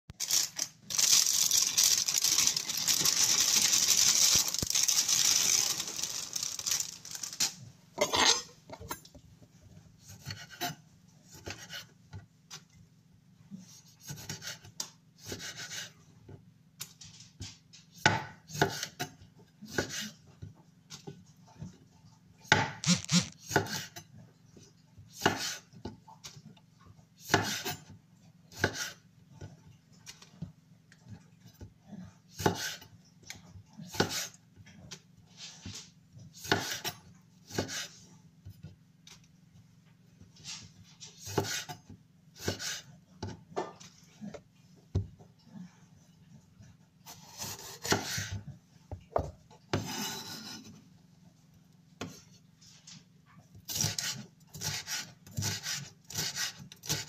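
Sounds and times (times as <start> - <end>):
knife slicing tomatoes on wooden board: 10.0 - 11.9, 13.9 - 15.9, 18.0 - 20.2, 22.5 - 24.0, 25.1 - 25.7, 27.2 - 27.9, 28.5 - 29.0, 32.3 - 32.9, 33.9 - 34.3, 36.4 - 38.0, 41.0 - 43.6, 47.0 - 48.4, 53.6 - 57.0.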